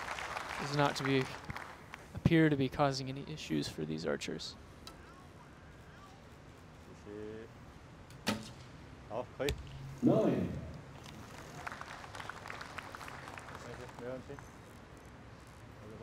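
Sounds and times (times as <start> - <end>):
short voice sound: 10.0 - 10.8.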